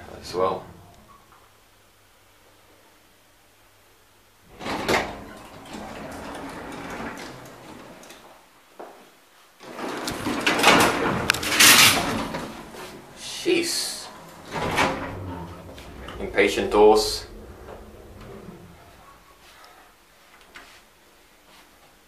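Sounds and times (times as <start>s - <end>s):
elevator doors sliding: 4.5s - 8.4s, 9.6s - 20.0s
elevator door click: 14.0s - 19.3s.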